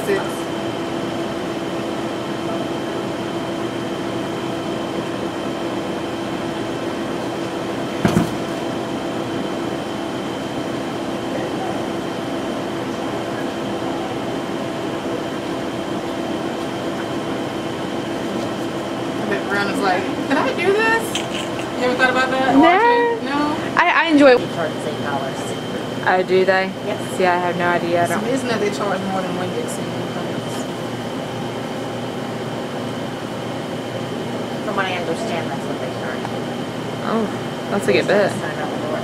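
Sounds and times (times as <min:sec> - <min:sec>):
steady machine hum: 0:00.0 - 0:39.0.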